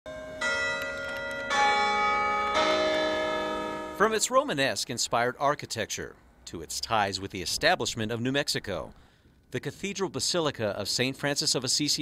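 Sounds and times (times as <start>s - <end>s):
church bells ringing: 0.1s - 4.6s.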